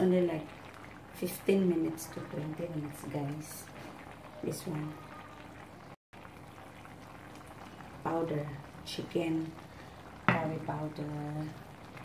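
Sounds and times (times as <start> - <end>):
curry simmering in a pan: 0.0 - 12.0.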